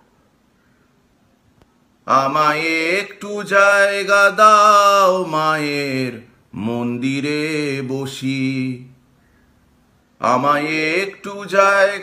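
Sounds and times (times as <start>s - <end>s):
man chanting: 10.2s - 12.0s.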